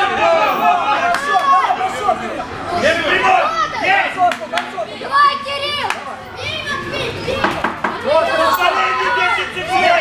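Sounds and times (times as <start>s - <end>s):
children shouting: 0.0s - 10.0s.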